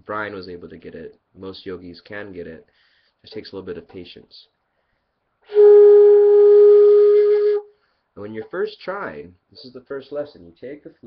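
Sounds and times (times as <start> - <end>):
breathy flute note: 5.4 - 7.9.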